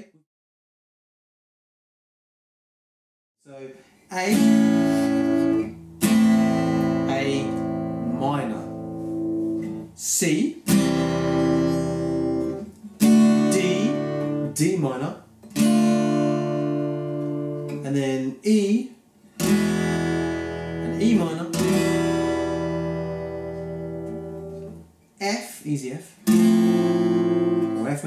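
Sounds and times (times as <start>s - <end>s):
acoustic guitar strummed chord: 4.4s - 8.0s, 10.7s - 14.6s, 19.4s - 24.8s, 26.3s - 28.0s.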